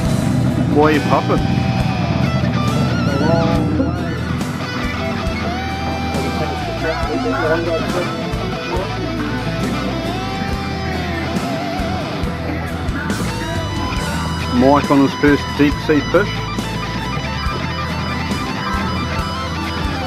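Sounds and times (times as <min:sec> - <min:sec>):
electric guitar music: 0:00.0 - 0:20.0.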